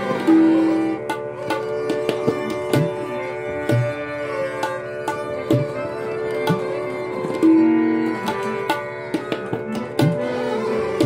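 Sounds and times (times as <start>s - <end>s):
harmonium notes: 0.0s - 11.0s
sarangi: 0.0s - 11.0s
tabla strokes: 0.0s - 11.0s.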